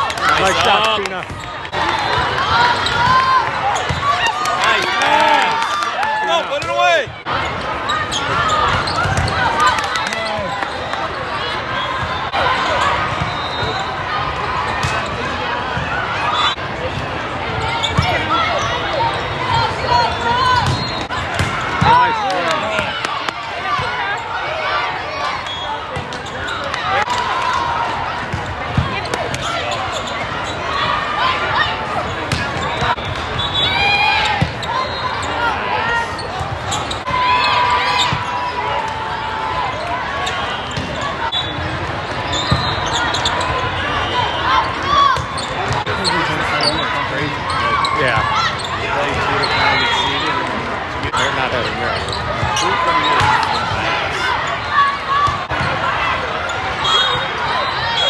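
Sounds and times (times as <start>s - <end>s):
shoes squeaking on court: 2.6s - 4.2s, 7.9s - 9.6s, 17.6s - 22.6s, 28.3s - 31.0s, 31.9s - 37.1s, 40.2s - 55.8s.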